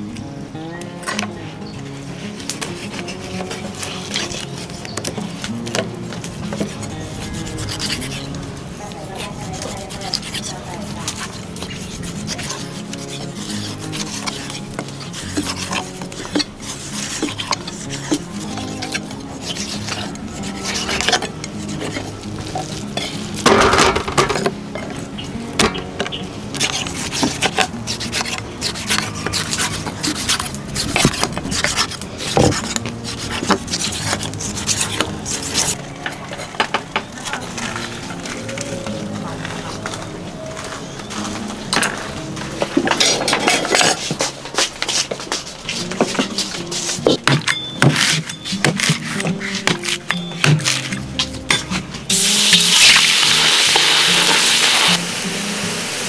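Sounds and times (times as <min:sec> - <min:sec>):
knives chopping on wooden block: 0:45.8 - 0:51.9.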